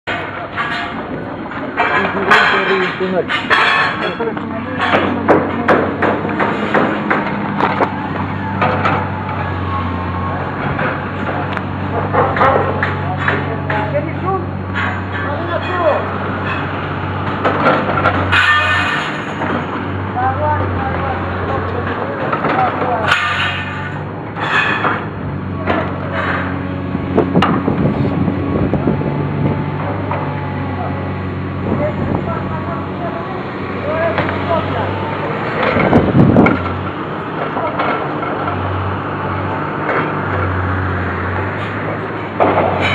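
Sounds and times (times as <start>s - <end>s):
diesel engine humming: 0.0s - 42.9s
sharp knocks and clicks: 0.1s - 9.4s, 24.8s - 27.9s
people's voices: 0.1s - 16.7s, 20.0s - 24.6s, 29.6s - 38.7s.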